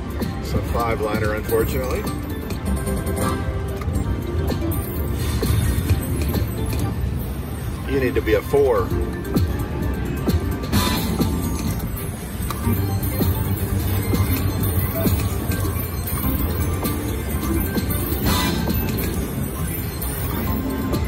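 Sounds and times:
slot machine music and jingles: 0.0s - 21.0s.

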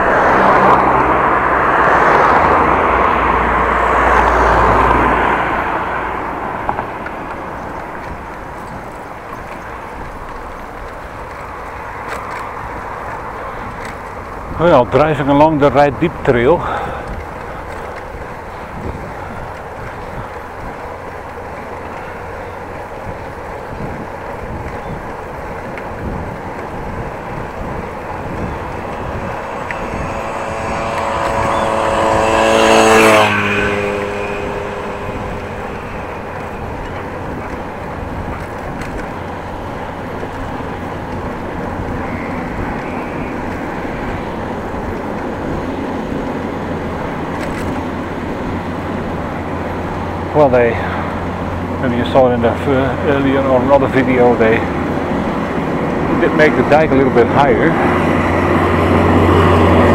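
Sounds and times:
bicycle rolling on pavement: 0.0s - 59.9s
motor vehicle passing by: 0.0s - 59.9s
wind: 0.0s - 59.9s.

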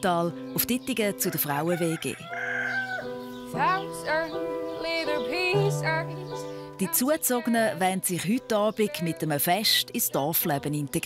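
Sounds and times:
background music: 0.0s - 11.0s
rooster crowing: 1.2s - 3.2s.

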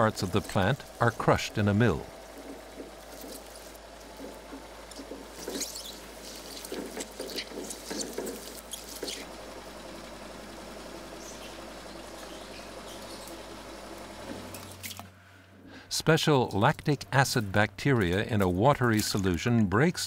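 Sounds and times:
sprigs rustling and crackling: 0.0s - 15.1s
faint steady hum: 0.0s - 20.0s.

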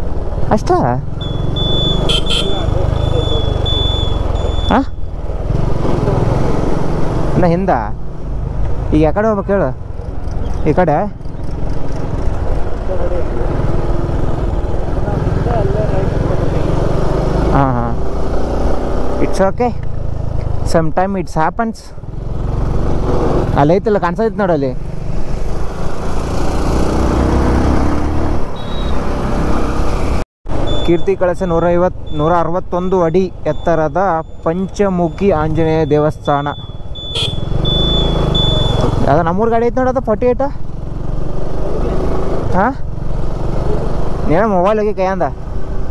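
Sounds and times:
road rumble: 0.0s - 45.9s.

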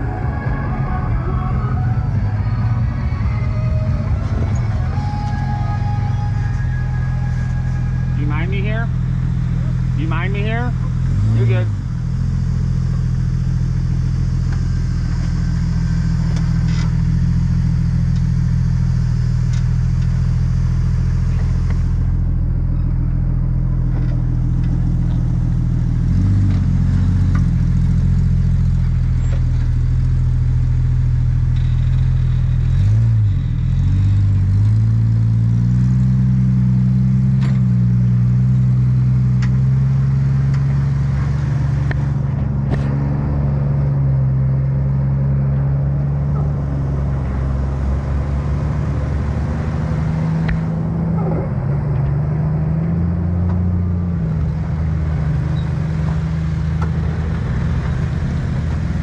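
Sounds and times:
car engine running at low revs: 0.0s - 59.0s.

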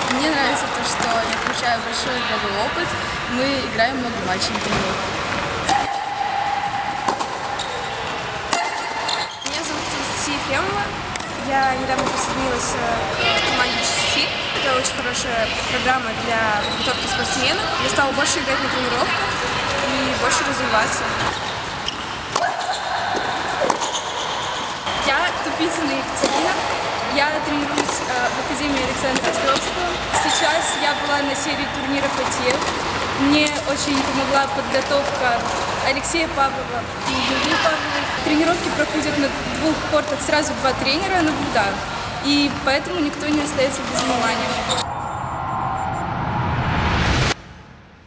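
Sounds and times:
steady hum: 44.1s - 48.0s
whooshing riser with deep rumble: 44.5s - 48.0s.

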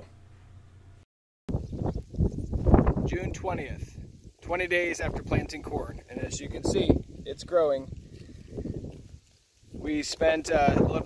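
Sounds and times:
wind buffeting microphone: 1.5s - 11.0s.

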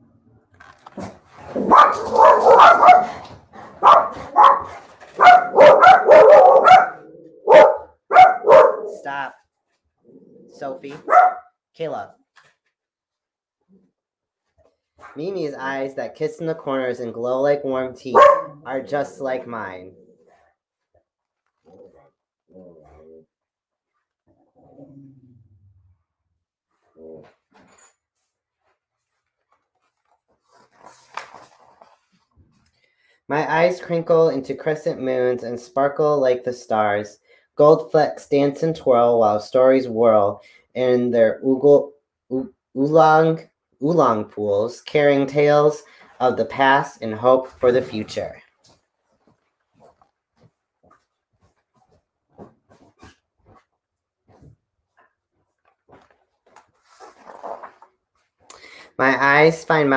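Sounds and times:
dog barking: 1.6s - 9.0s, 11.0s - 11.5s, 18.1s - 18.6s
book page turning: 28.6s - 32.7s, 55.6s - 58.5s.

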